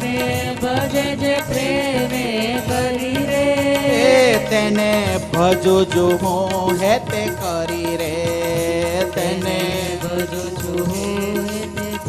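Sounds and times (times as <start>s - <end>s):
harmonium melody: 0.0s - 12.0s
kartal clappers striking: 0.0s - 12.0s
person singing: 0.0s - 12.0s
tabla drumming: 0.0s - 12.0s.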